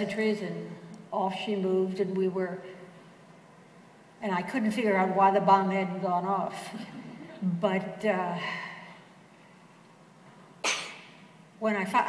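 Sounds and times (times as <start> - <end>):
person coughing: 10.6 - 11.1.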